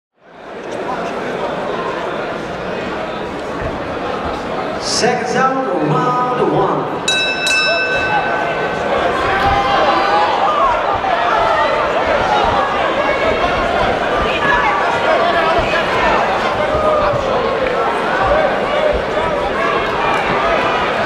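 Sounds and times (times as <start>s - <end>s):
crowd shouting and cheering: 0.4s - 21.0s
boxing ring bell: 7.1s - 9.2s.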